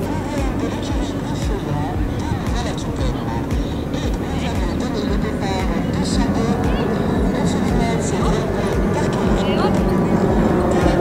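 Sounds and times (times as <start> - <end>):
indistinct voices: 0.0 - 11.0
low thumps: 0.0 - 11.0
steady outdoor noise: 0.0 - 11.0.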